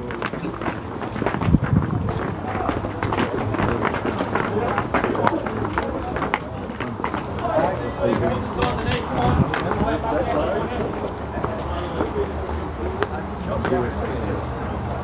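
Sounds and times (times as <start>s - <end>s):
indistinct chatter: 0.0s - 15.0s.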